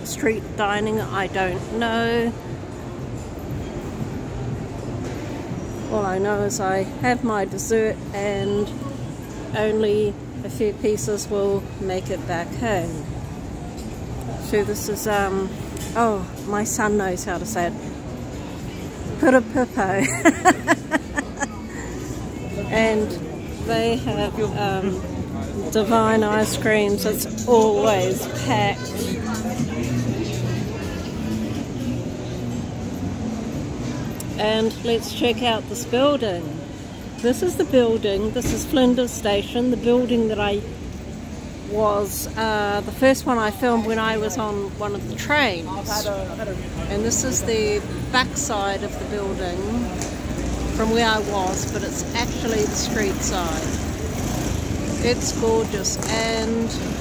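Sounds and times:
low rumble of city noise: 0.0 - 57.0.

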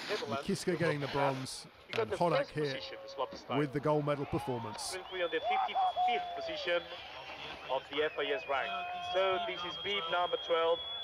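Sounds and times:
man speaking: 0.1 - 5.9.

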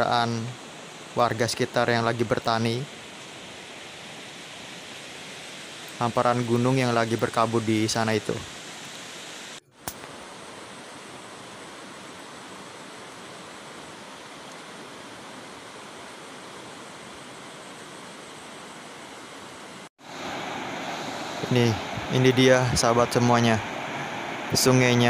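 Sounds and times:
rushing hiss of outdoor ambience: 0.0 - 25.0
river running over rocks: 8.3 - 25.0.

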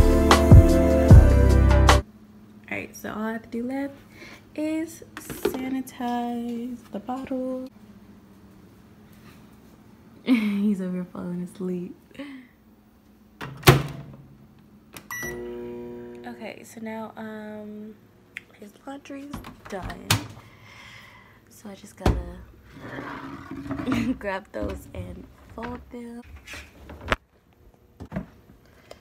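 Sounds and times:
microwave door latching shut: 13.4 - 14.1.

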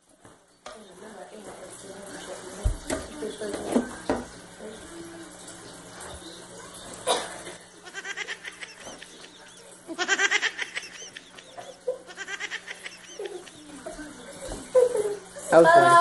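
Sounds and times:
child giggling: 7.8 - 15.9.

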